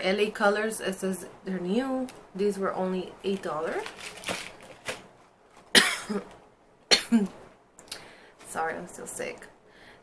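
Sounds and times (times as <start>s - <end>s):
woman coughing: 5.7s - 6.3s, 6.9s - 7.4s.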